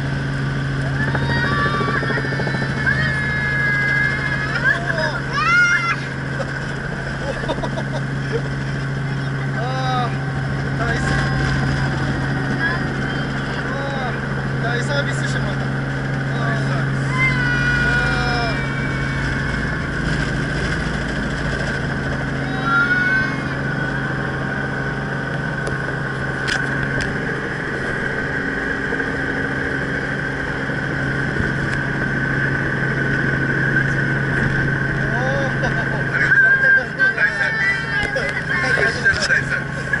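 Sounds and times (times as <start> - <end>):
helicopter engine and rotor droning: 0.0 - 40.0.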